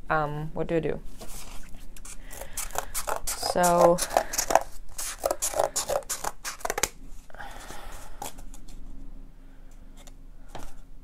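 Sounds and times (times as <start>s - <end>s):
cardboard rustling on plastic: 1.1s - 7.3s
scissors cutting cardboard: 1.4s - 6.9s.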